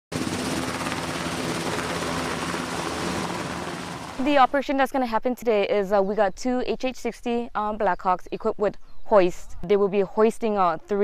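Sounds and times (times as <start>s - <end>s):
helicopters lifting off: 0.1s - 4.9s.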